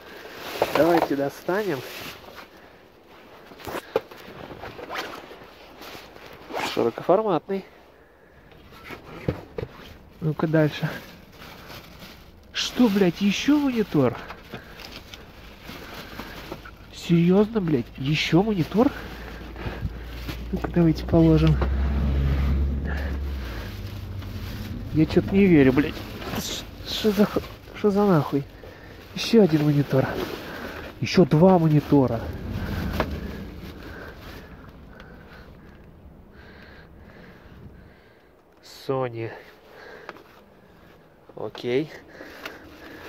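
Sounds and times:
plastic bag rustling: 0:00.0 - 0:06.5, 0:08.7 - 0:37.3
wind rumble on microphone: 0:19.2 - 0:28.2, 0:30.6 - 0:38.1.

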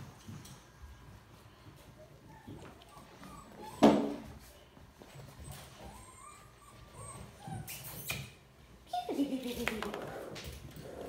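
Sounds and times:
puppy whimpering: 0:01.9 - 0:04.4, 0:05.2 - 0:11.0.

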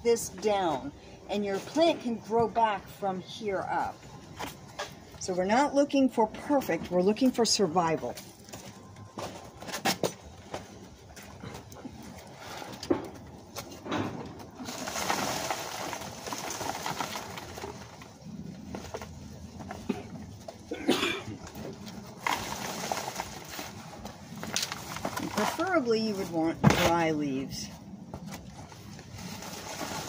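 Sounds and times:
dry leaves rustling: 0:14.5 - 0:19.8, 0:21.5 - 0:27.1, 0:28.4 - 0:30.0.

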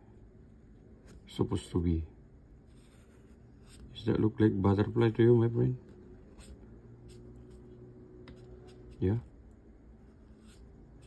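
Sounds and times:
marker drawing on paper: 0:02.6 - 0:04.1, 0:05.9 - 0:09.3, 0:10.0 - 0:11.0.

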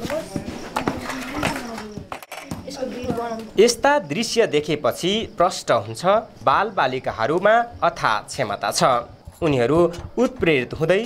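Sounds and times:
children's voices: 0:00.0 - 0:03.7.

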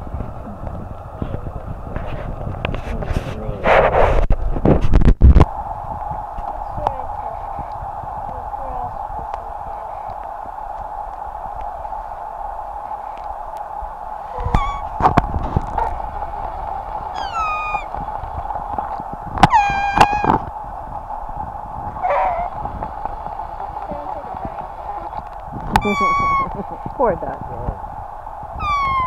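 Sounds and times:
grass-blade whistle squeals: 0:14.3 - 0:14.9, 0:17.1 - 0:17.9, 0:28.6 - 0:29.0.

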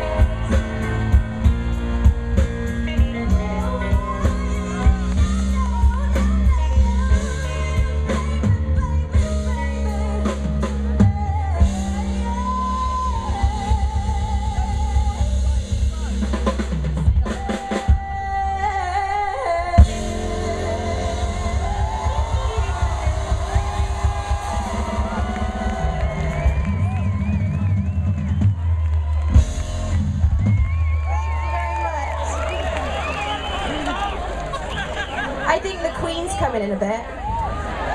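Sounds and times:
live band playing slow ballad: 0:00.0 - 0:37.9
woman singing with vibrato: 0:02.8 - 0:15.6, 0:17.2 - 0:25.6.

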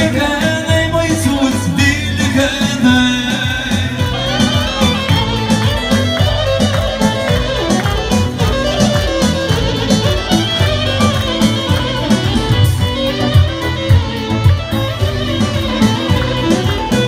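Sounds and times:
keyboard dance tune over pa: 0:00.0 - 0:17.0
steady beat: 0:00.1 - 0:17.0
bowed string lead melody: 0:02.8 - 0:17.0.

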